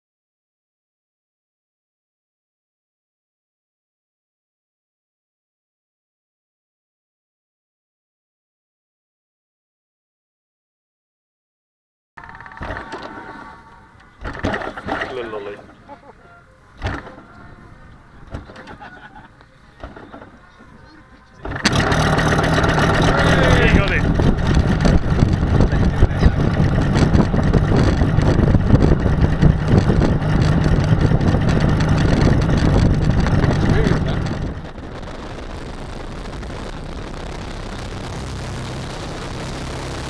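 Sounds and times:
model plane engine running: 0:21.4 - 0:34.8.

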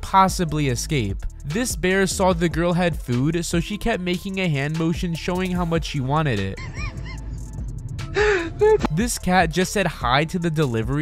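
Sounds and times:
person gasping: 0:08.0 - 0:08.8.

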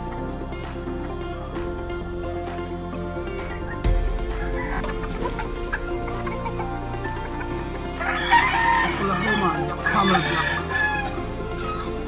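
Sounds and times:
rooster crowing: 0:08.0 - 0:11.8.

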